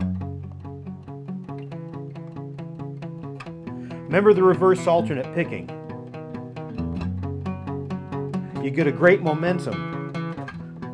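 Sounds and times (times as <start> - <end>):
acoustic guitar picked notes: 0.0 - 10.9.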